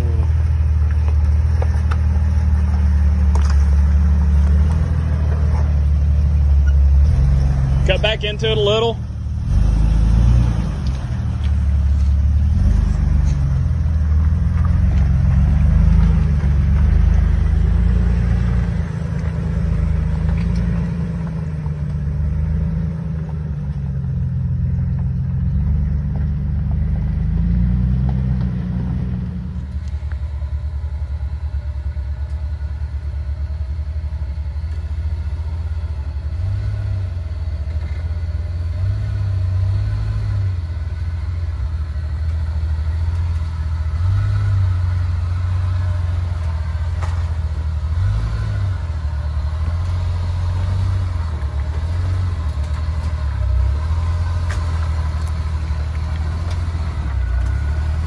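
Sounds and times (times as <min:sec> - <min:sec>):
off-road vehicle engine crawling: 0:00.0 - 0:58.0.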